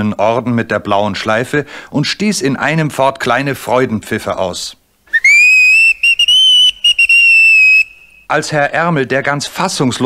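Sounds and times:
steam locomotive whistle toots: 5.2 - 8.2.

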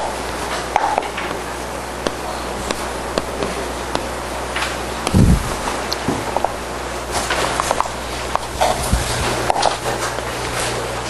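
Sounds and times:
electrical hum: 0.0 - 11.0
dull low thump: 5.1 - 6.3.

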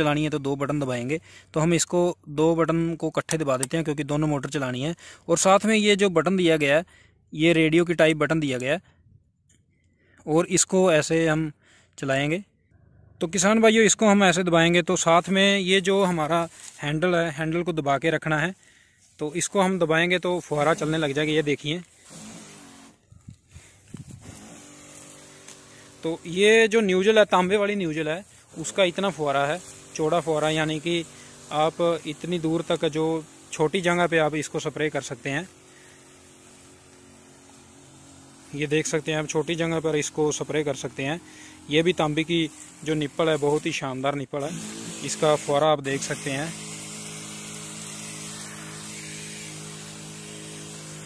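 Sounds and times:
spray pump motor humming: 13.4 - 51.0
lance spraying: 19.0 - 51.0.

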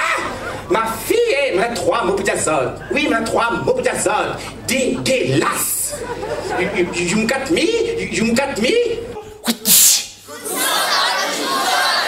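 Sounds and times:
person sneeze-like vocal burst: 9.4 - 10.2.

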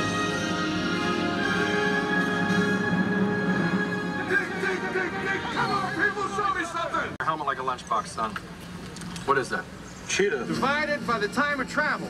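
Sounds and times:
film music with sustained notes: 0.0 - 7.1.

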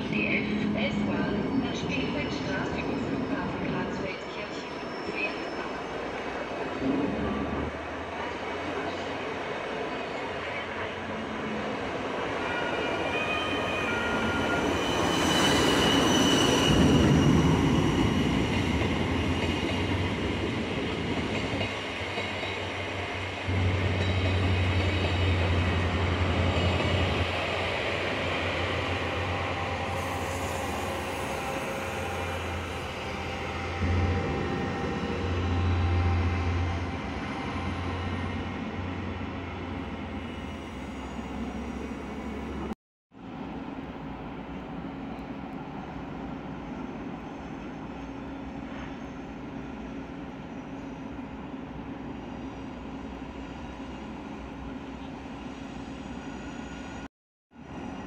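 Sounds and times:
train wheel squeal: 2.6 - 6.0, 12.5 - 19.7, 28.2 - 38.5, 46.7 - 51.3, 55.0 - 57.1.

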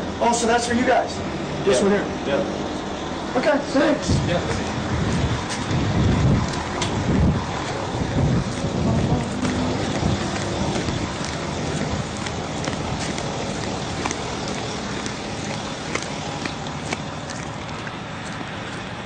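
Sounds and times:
wind buffeting microphone: 4.0 - 19.0.

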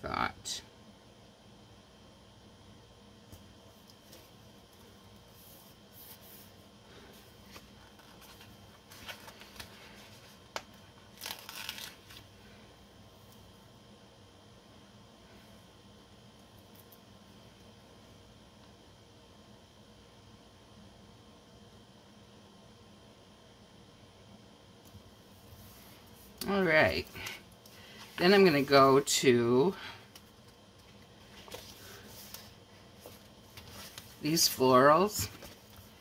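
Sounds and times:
paper rustling: 7.4 - 12.3.

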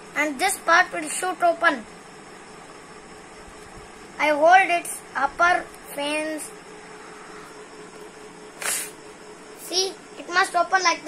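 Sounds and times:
faint steady hum: 0.0 - 11.0
puff of breath into paper: 8.6 - 9.0.

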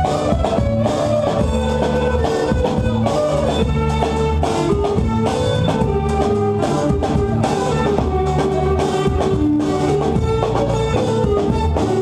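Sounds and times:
drum kit steady beat: 0.0 - 12.0
live band music: 0.0 - 12.0.

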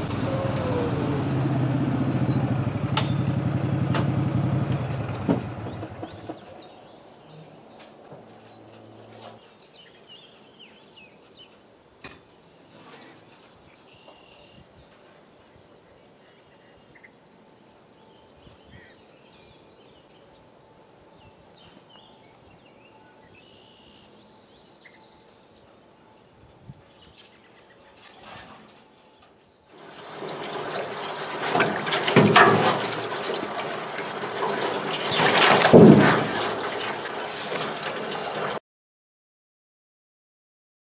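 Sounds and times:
insect trilling: 15.4 - 29.8
water sloshing and splashing: 29.7 - 38.6.

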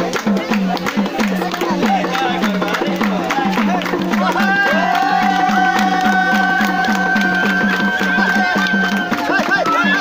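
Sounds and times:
quick drum beat: 0.0 - 10.0.

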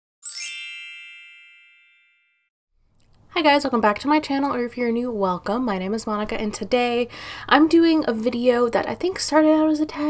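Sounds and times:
bell-like chime: 0.2 - 2.5.

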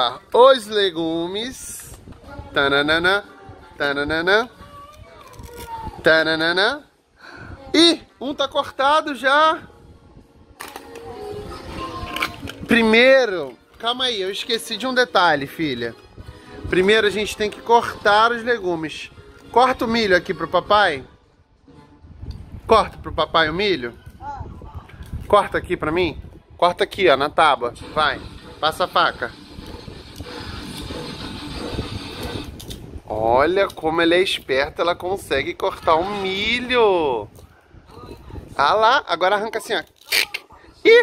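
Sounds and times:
soft background music: 0.0 - 37.4.

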